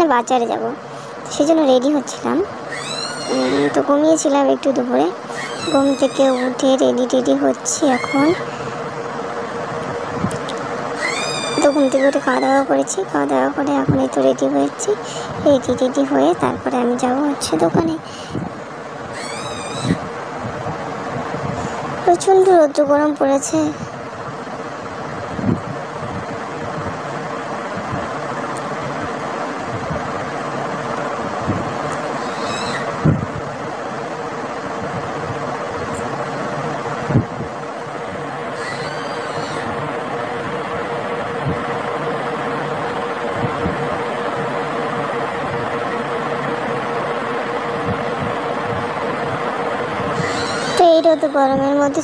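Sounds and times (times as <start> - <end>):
steady electric hum: 0.0 - 52.0
faint high chirps: 2.7 - 3.8, 11.0 - 12.6, 19.1 - 20.0, 32.1 - 32.9.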